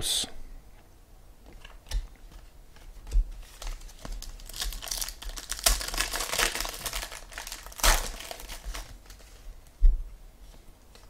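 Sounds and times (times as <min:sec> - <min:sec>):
plastic packaging crinkling: 0:01.6 - 0:09.6.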